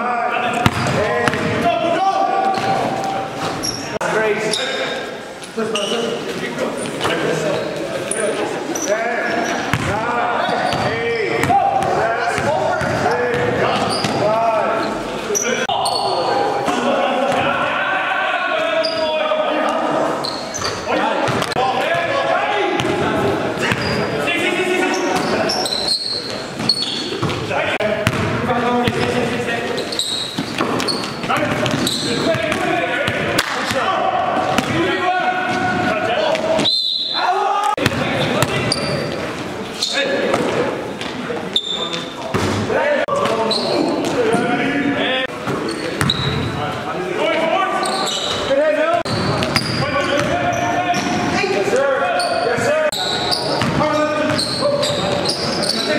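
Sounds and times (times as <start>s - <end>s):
players calling out: 0.0s - 55.9s
sneaker squeaks: 0.5s - 1.5s, 2.1s - 11.9s, 12.8s - 16.4s, 18.8s - 19.2s, 20.1s - 21.6s, 23.6s - 24.2s, 24.8s - 28.2s, 28.9s - 32.7s, 35.5s - 37.3s, 38.2s - 40.1s, 41.5s - 42.6s, 43.2s - 44.2s, 45.5s - 46.6s, 47.7s - 48.5s, 49.1s - 51.3s, 52.1s - 55.9s
ball bouncing on court floor: 0.6s - 1.6s, 9.7s - 10.0s, 26.6s - 29.2s, 30.3s - 33.8s, 34.5s - 34.8s, 49.1s - 51.2s, 53.6s - 54.5s.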